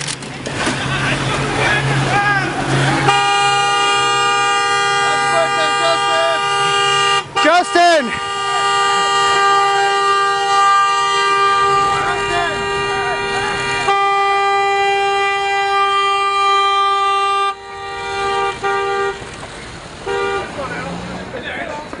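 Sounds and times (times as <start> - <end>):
people shouting: 2.0 - 4.2
car horn blast: 2.9 - 19.4, 20.0 - 20.8
short car horn toots: 3.1 - 19.2.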